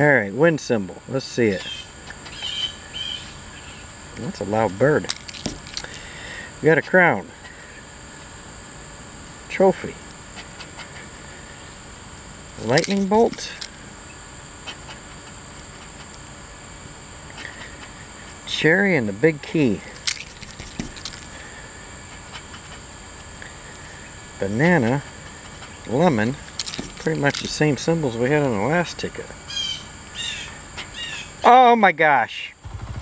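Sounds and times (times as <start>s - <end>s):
high-pitched insect drone: 0.0s - 33.0s
bird calling: 1.6s - 3.9s, 29.5s - 31.5s
scratching lottery ticket: 12.6s - 13.7s, 19.9s - 21.5s.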